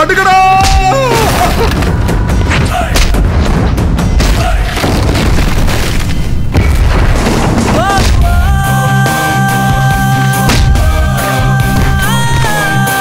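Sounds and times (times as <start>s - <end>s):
action score music: 0.0s - 13.0s
booming fight impacts: 2.4s - 8.5s.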